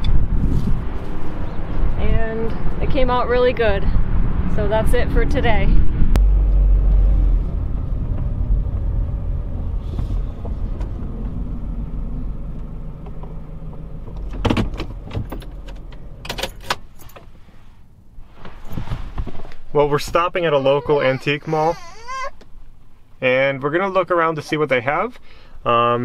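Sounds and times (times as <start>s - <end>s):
car engine and road rumble: 0.0s - 26.0s
sharp clicks and rattles: 12.5s - 17.3s.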